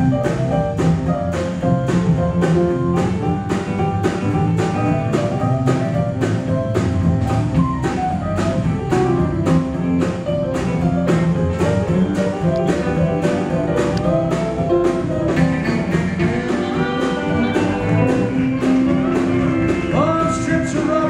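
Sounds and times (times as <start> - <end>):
country band playing: 0.0 - 21.0.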